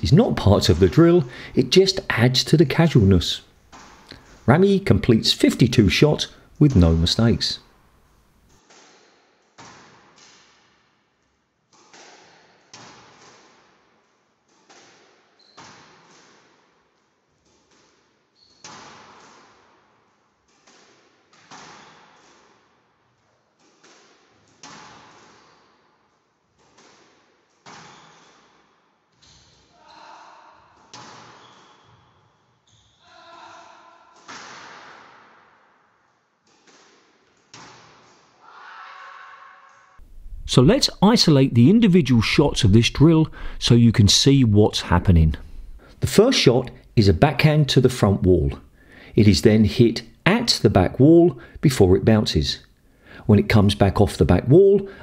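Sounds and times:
squash ball hits echoing: 8.6s - 13.9s, 14.5s - 16.7s, 17.4s - 22.6s, 23.6s - 25.7s, 26.5s - 28.5s, 29.1s - 32.3s, 33.1s - 38.5s.

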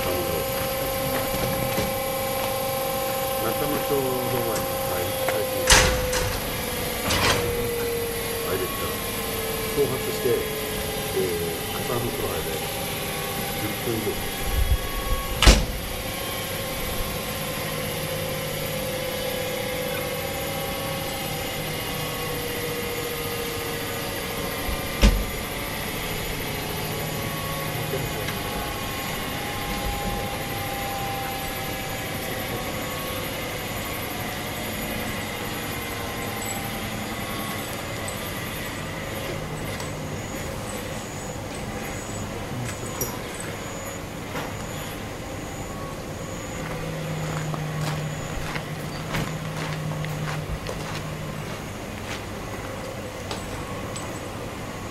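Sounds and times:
electric railcar equipment humming: 0.0s - 54.9s.

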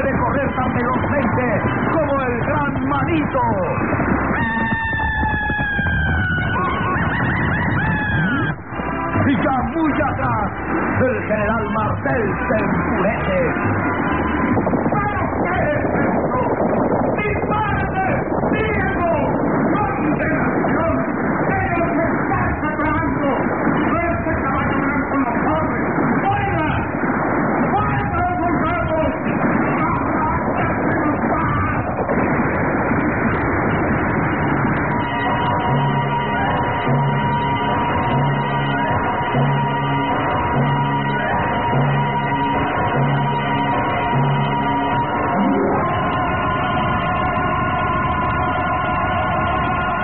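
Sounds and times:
murmur of voices on old radio: 0.0s - 4.5s, 9.2s - 50.0s
horse whinnying: 4.3s - 8.6s.

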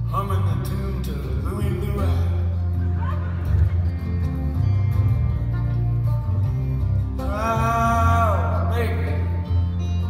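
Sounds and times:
country-folk band playing: 0.0s - 10.0s
steady bass line: 0.0s - 10.0s.

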